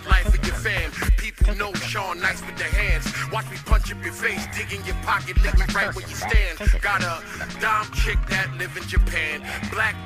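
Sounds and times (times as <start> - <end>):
low bass line: 0.0 - 10.0
rapping over a beat: 0.0 - 10.0
deep kick drum: 0.1 - 1.8, 2.7 - 3.1, 5.3 - 6.9, 8.0 - 8.4, 9.0 - 9.2.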